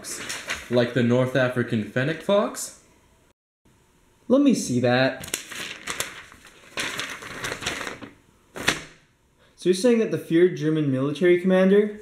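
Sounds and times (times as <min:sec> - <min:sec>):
paper sheets rustling: 0:00.0 - 0:01.3, 0:05.2 - 0:09.0.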